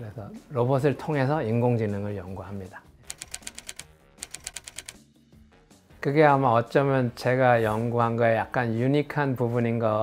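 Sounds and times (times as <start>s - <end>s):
soft background music: 0.0s - 10.0s
keyboard key clicks: 3.1s - 5.0s.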